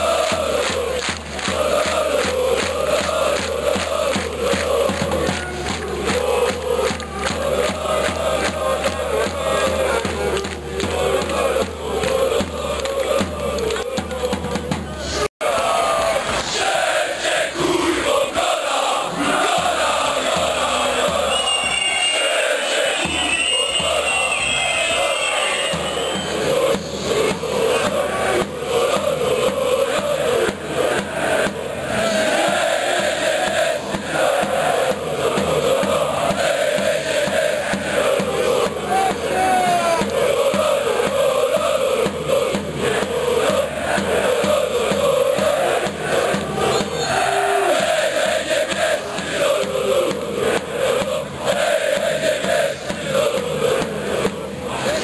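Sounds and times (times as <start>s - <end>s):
crowd singing a chant: 0.0s - 55.0s.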